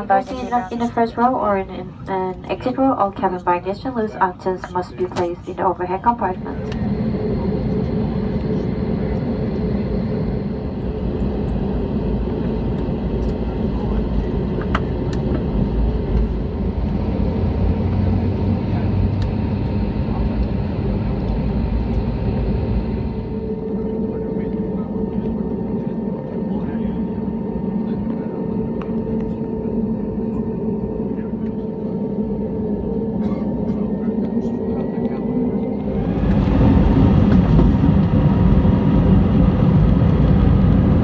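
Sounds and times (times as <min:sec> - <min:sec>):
jet engines roaring: 0:00.0 - 0:41.0
rumble of takeoff roll: 0:00.0 - 0:41.0.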